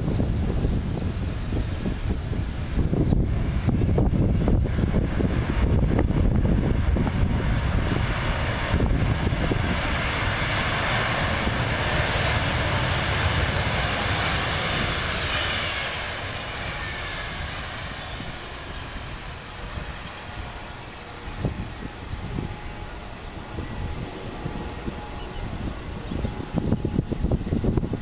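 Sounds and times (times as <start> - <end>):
jet engines roaring: 0.0 - 28.0.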